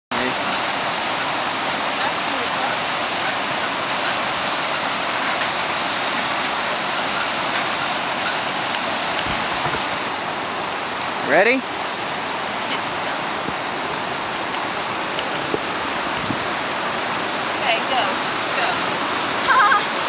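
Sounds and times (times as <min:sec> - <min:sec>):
river rushing over rapids: 0:00.1 - 0:20.0.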